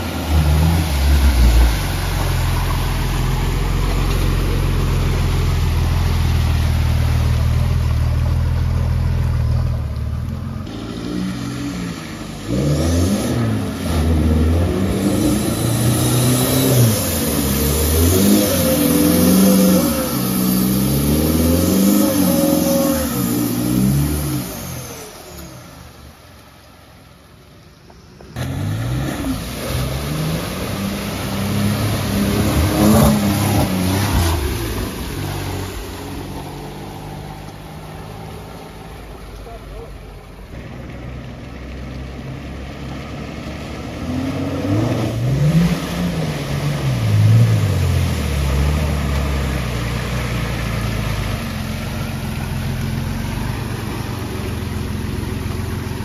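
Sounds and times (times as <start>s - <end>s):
four-wheel-drive engines revving: 0.0s - 26.3s, 27.8s - 56.0s.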